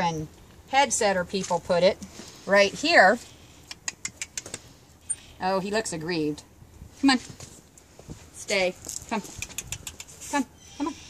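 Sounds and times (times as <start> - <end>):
woman calling to a horse: 8.4 - 9.4, 10.3 - 11.0.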